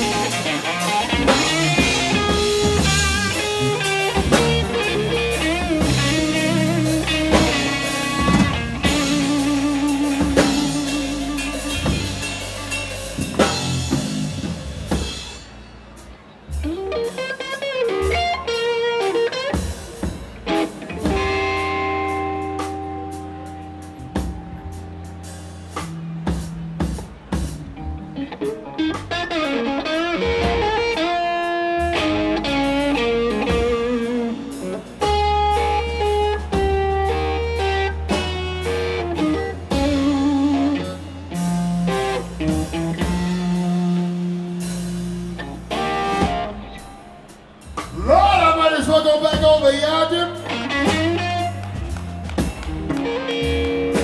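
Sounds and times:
electric guitar solo: 0.0 - 14.0, 16.6 - 25.1, 27.7 - 47.4, 49.0 - 54.0
bass guitar: 0.0 - 54.0
drum kit: 0.0 - 54.0.

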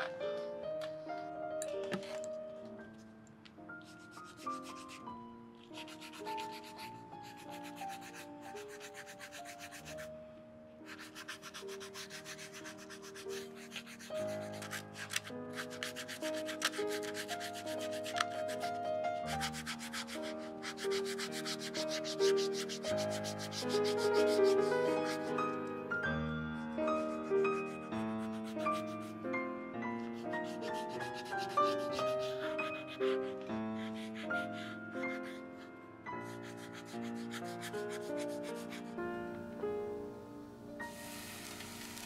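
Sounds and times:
soft background music: 0.0 - 42.0.

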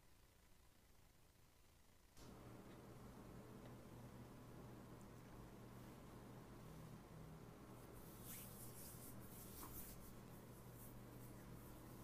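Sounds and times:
flickering high hiss: 0.0 - 12.0
steady low hum: 0.0 - 12.0.

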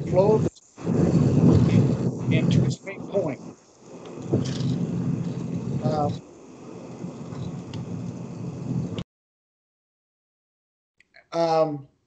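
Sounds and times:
low uneven rumble: 0.0 - 9.0.

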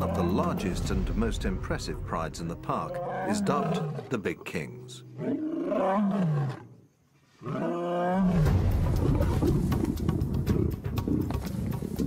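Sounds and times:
music: 0.0 - 3.0, 8.3 - 12.0
lion roaring: 2.9 - 4.2, 5.2 - 6.7, 7.4 - 11.4
lions fighting: 7.4 - 12.0.

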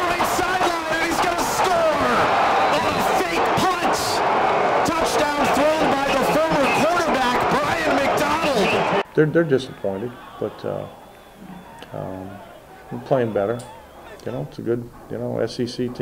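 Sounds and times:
excited announcer calling play: 0.0 - 14.4
stadium crowd noise: 0.0 - 16.0.

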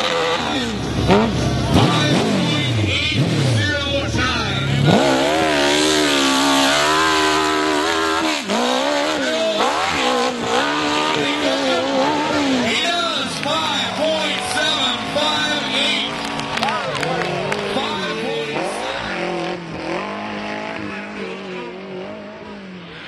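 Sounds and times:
dirt bike engine revving: 0.0 - 23.0
dirt bike engines at full throttle: 0.0 - 23.0.

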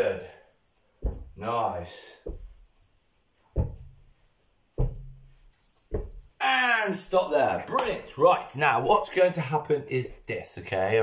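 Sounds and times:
heavy foot stomps on floor: 1.0 - 1.4, 2.2 - 2.8, 3.5 - 4.2, 4.8 - 6.4.

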